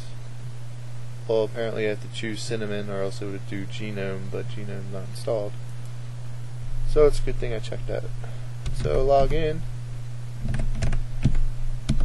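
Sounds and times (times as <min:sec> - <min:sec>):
low steady hum: 0:00.0 - 0:12.0
computer keyboard keystrokes: 0:10.4 - 0:12.0.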